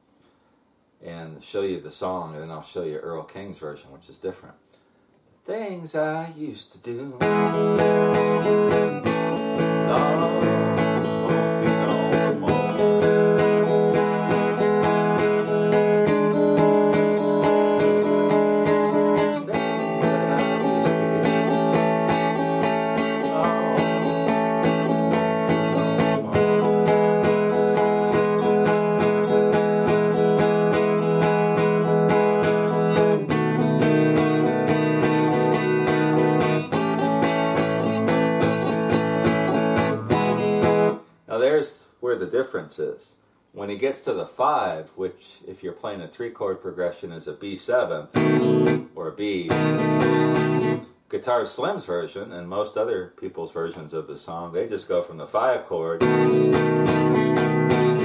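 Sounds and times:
electric guitar strumming blues chords: 0:07.1 - 0:41.1, 0:48.1 - 0:51.0, 0:56.0 - 0:58.0.

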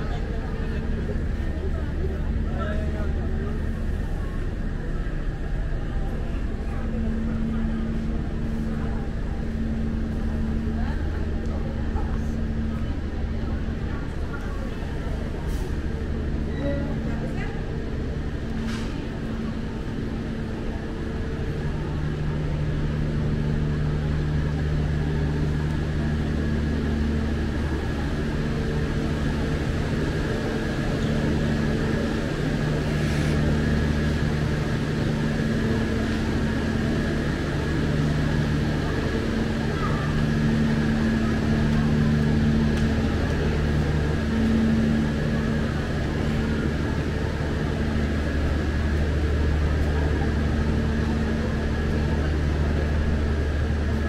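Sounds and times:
diesel train engine idling: 0:00.0 - 0:54.0.

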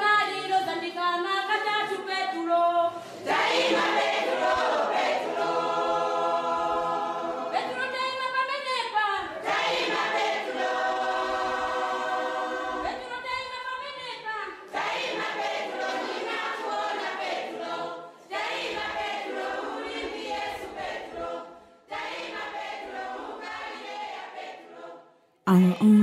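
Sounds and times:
a cappella choir singing: 0:00.0 - 0:26.0.

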